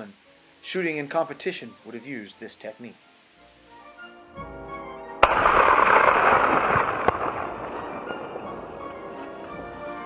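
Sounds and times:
rifle shot with echo: 5.2 - 9.0.

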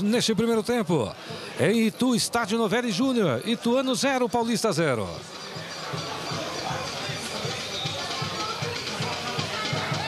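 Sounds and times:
crowd noise: 0.0 - 10.0
drum beating quick rhythm: 2.2 - 10.0.

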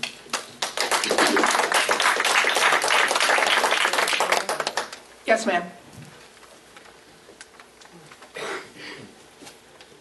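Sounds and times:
audience applauding: 0.3 - 5.0.

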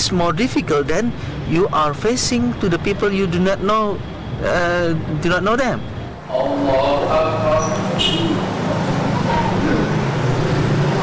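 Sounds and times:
men reciting prayer together: 6.2 - 9.6.

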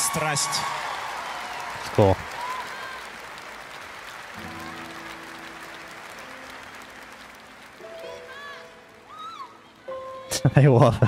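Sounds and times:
audience applauding: 0.0 - 10.4.

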